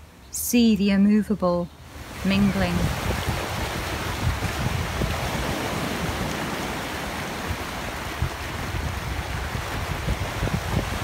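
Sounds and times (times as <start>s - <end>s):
wind buffeting microphone: 1.8s - 11.0s
surf washing over pebbles: 1.9s - 11.0s.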